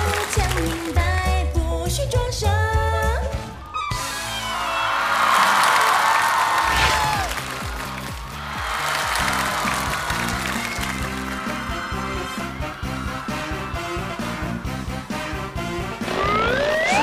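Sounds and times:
audience applause and cheering: 0:00.0 - 0:01.5, 0:03.6 - 0:17.0
upbeat band music: 0:00.0 - 0:04.5, 0:06.6 - 0:17.0
stage music: 0:00.0 - 0:17.0
falling tone: 0:16.0 - 0:17.0.

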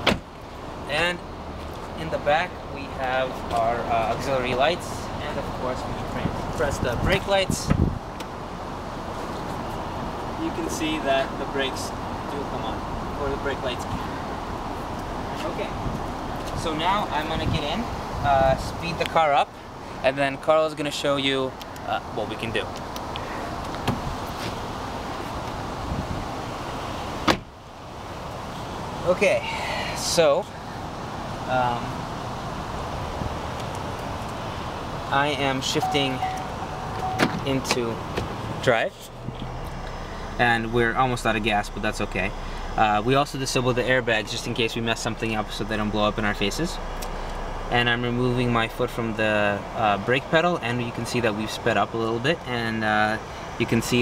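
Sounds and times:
car engine idling: 0:26.4 - 0:54.0.

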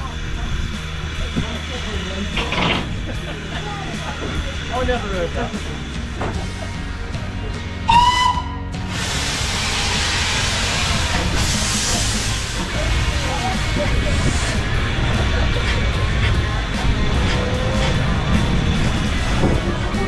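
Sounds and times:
steam locomotive whistle: 0:07.9 - 0:08.8
steam hissing: 0:07.9 - 0:20.0.

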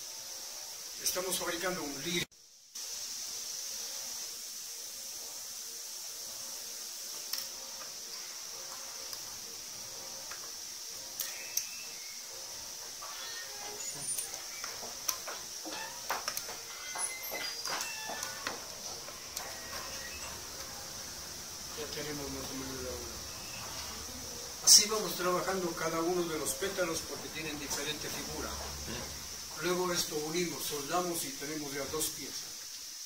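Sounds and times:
steady high hiss: 0:00.0 - 0:33.0
tweezers and wire clicking on wood: 0:14.2 - 0:16.6.

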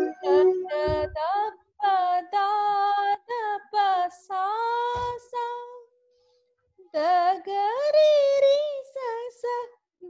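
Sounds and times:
woman singing: 0:00.0 - 0:05.9, 0:06.8 - 0:09.7.

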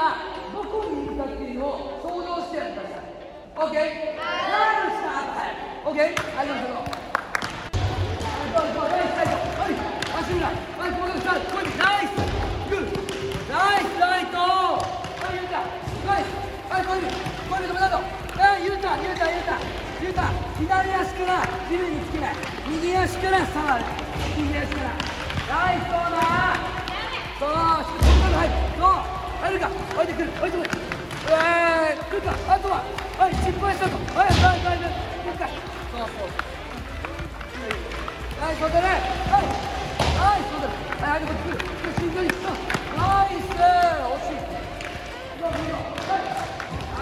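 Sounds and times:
soccer balls bouncing on hard floor: 0:06.2 - 0:47.0.

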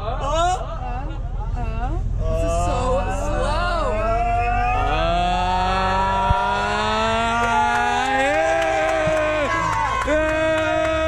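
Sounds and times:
bus engine rumbling: 0:00.0 - 0:11.0
passengers cheering and shouting: 0:02.2 - 0:11.0.

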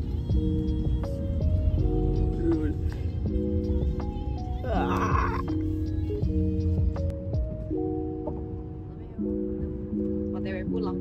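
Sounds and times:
background music with held chords: 0:00.0 - 0:11.0.

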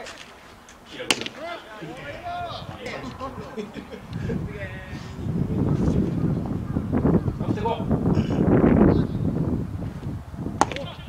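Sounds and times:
baseball bat crack: 0:00.0 - 0:01.7, 0:10.6 - 0:11.0
low background voices: 0:00.0 - 0:09.2.

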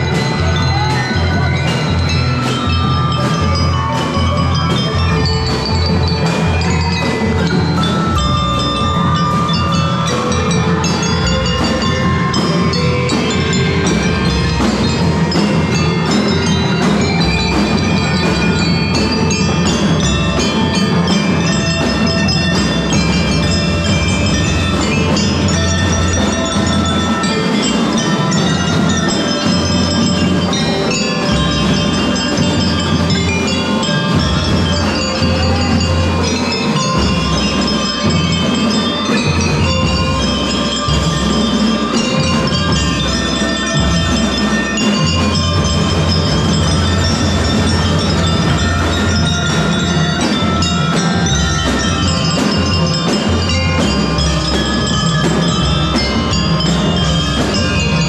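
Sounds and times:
bell lyre notes: 0:00.0 - 0:58.0
mallet instruments playing melody: 0:00.0 - 0:58.0
marching drums beat: 0:00.0 - 0:58.0.

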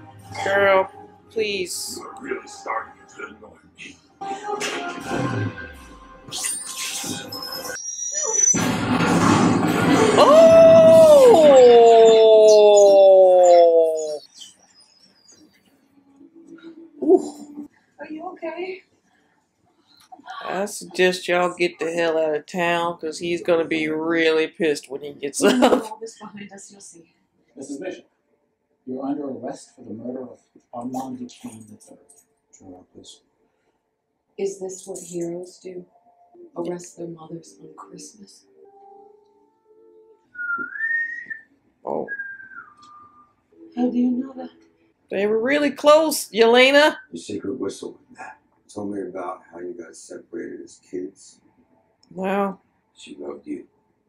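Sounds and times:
soft background music: 0:00.0 - 0:07.4, 0:14.5 - 0:28.3, 0:34.4 - 0:40.6, 0:43.0 - 0:48.2
woman wailing: 0:10.0 - 0:14.2
man whistling rising note: 0:40.3 - 0:41.5, 0:42.1 - 0:43.3.

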